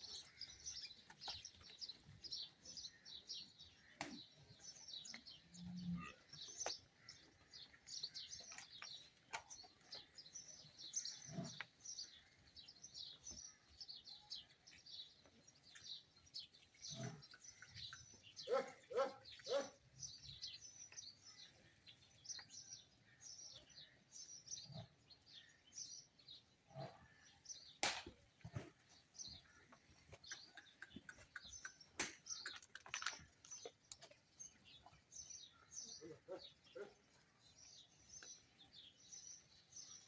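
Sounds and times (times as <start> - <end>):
small birds chirping: 0.0 - 40.0.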